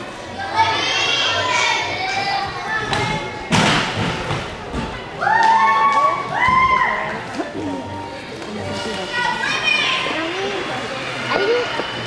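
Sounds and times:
children chattering: 0:00.0 - 0:03.6, 0:04.9 - 0:12.0.

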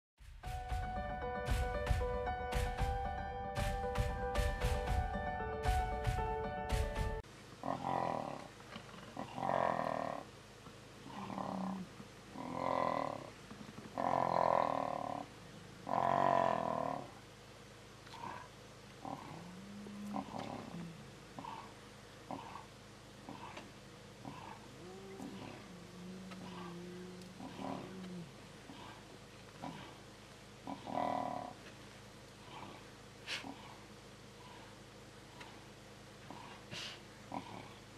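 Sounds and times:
lions snarling and growling: 0:07.6 - 0:10.3, 0:11.0 - 0:17.2, 0:18.0 - 0:31.6, 0:32.4 - 0:37.9.

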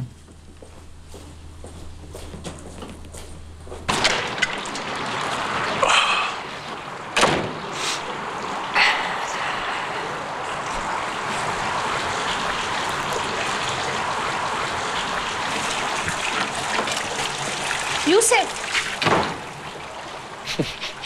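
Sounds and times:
steady rushing noise: 0:03.8 - 0:18.1
heavy door shutting: 0:06.7 - 0:08.1, 0:18.8 - 0:19.7.

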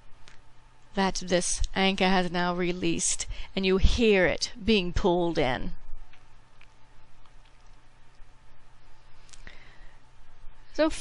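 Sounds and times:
low hum: 0:00.0 - 0:10.9.

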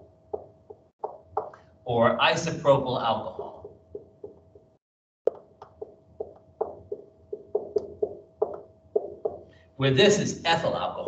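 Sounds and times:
marker tapping on whiteboard: 0:00.3 - 0:01.6, 0:03.4 - 0:09.5.

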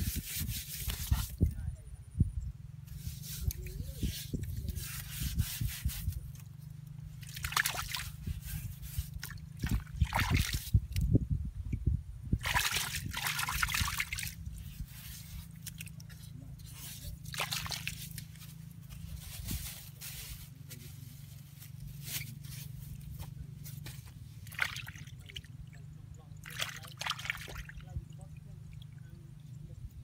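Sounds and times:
hand splashing in muddy water: 0:07.2 - 0:08.2, 0:08.8 - 0:10.7, 0:12.4 - 0:14.4, 0:16.8 - 0:18.4, 0:24.4 - 0:25.5, 0:26.4 - 0:27.8.

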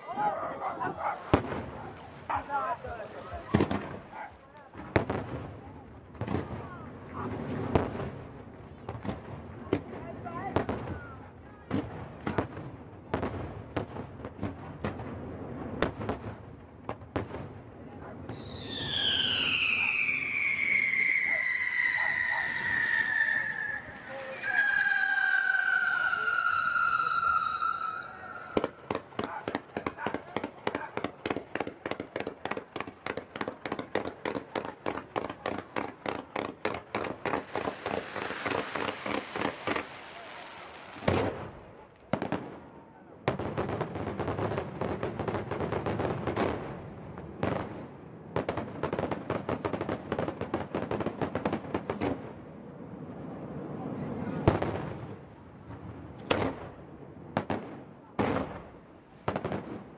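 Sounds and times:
sharp firework reports: 0:18.2 - 0:46.7
firework whistles falling in pitch: 0:18.3 - 0:28.8
firework shells bursting: 0:18.4 - 0:40.2.

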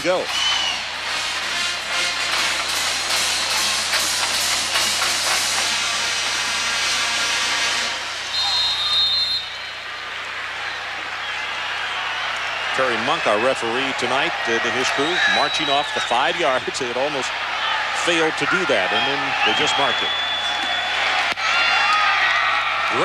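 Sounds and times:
stadium crowd noise: 0:00.0 - 0:23.0
whistle blowing: 0:00.3 - 0:00.9, 0:08.2 - 0:10.0, 0:14.8 - 0:16.5, 0:18.8 - 0:21.0
music: 0:00.4 - 0:08.3.

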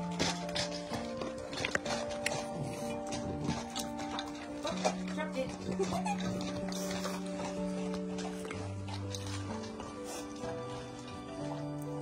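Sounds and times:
background music with held notes: 0:00.0 - 0:12.0
dogs chewing and licking: 0:00.0 - 0:12.0
metal bowls clicking: 0:00.0 - 0:12.0.

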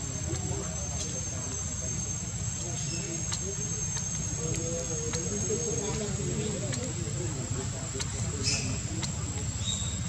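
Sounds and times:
faint clicks: 0:03.0 - 0:09.6.

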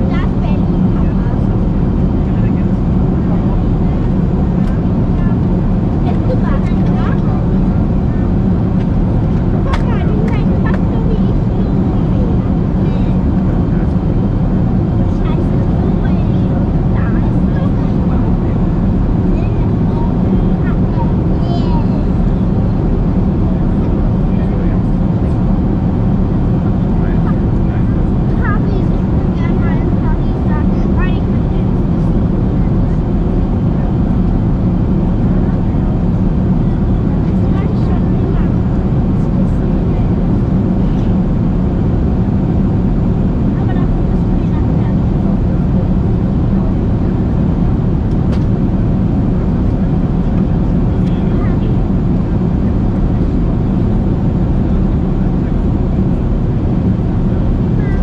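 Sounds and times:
airliner cabin rumble: 0:00.0 - 0:58.0
faint indistinct voices: 0:00.0 - 0:58.0.

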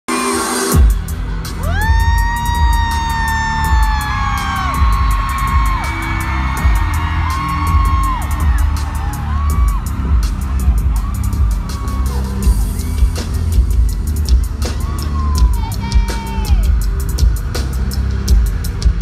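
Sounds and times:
live band playing loud: 0:00.1 - 0:19.0
steady drum beat: 0:00.7 - 0:19.0
fans whooping: 0:01.4 - 0:16.9.

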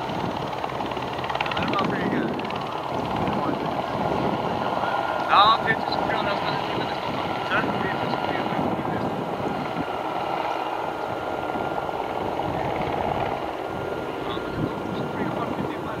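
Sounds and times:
model helicopter engine whine: 0:00.0 - 0:16.0.

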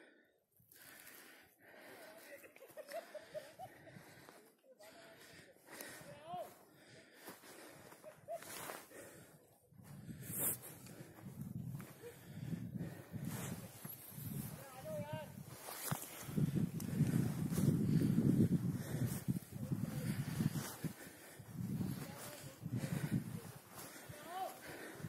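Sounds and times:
faint voices outdoors: 0:01.6 - 0:16.3, 0:18.8 - 0:25.0
wind rumbling on microphone: 0:09.8 - 0:24.1.

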